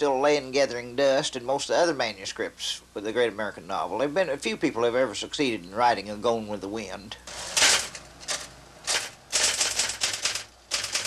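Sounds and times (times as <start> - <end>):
typewriter typing: 7.3 - 11.0.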